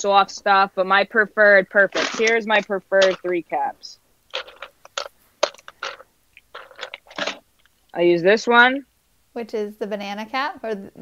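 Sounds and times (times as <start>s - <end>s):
plastic caps being handled: 1.9s - 3.5s, 4.3s - 7.8s.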